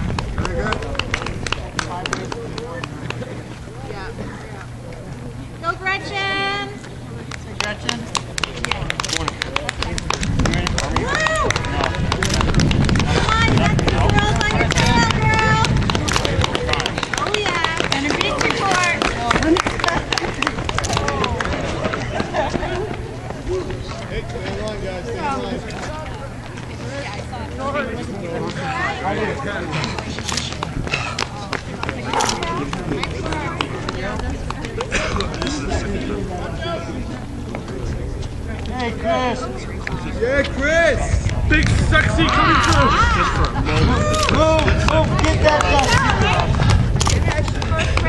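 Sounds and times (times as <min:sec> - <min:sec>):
running footsteps on pavement: 0:00.0 - 0:05.3, 0:06.6 - 0:48.0
spectators talking: 0:00.0 - 0:48.0.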